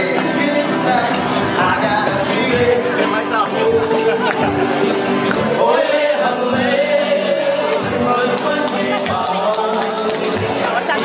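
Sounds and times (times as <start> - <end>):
acoustic guitar: 0.0 - 11.0.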